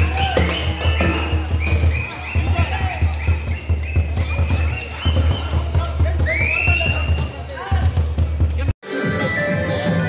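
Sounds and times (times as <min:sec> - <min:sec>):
low drum beat: 0:00.0 - 0:08.7.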